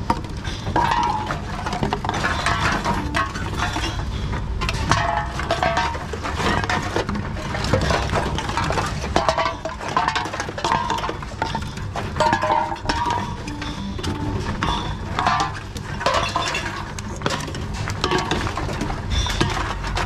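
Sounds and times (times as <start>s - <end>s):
cans and bottles clinking: 0.0s - 20.0s.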